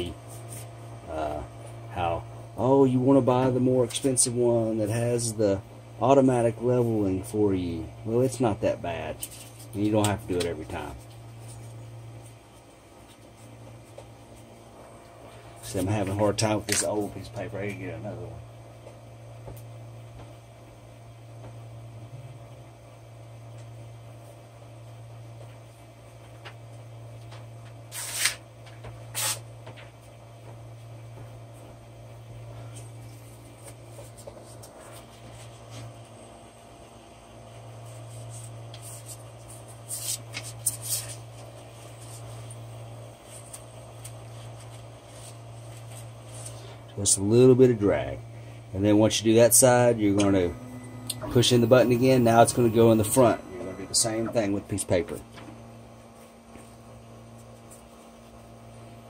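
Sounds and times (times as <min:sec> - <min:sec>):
steady low hum: 0:00.0 - 0:59.0.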